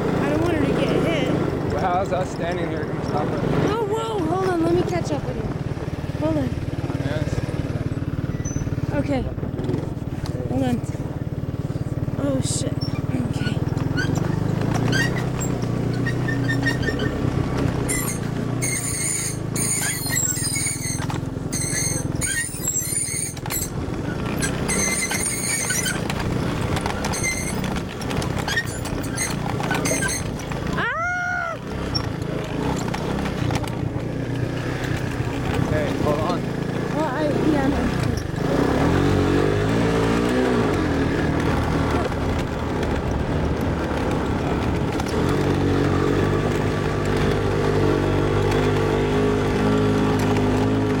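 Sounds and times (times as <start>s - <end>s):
three-wheeler engine running: 0.0s - 51.0s.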